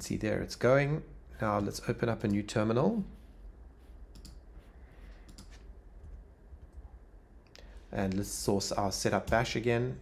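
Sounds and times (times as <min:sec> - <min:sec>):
low room hum: 0:00.0 - 0:10.0
computer mouse clicks: 0:04.1 - 0:04.4, 0:05.2 - 0:06.9.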